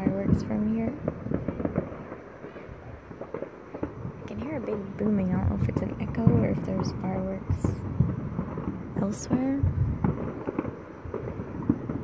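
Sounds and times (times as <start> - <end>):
distant fireworks cracks and pops: 0.0 - 12.0
low steady rumble: 2.7 - 12.0.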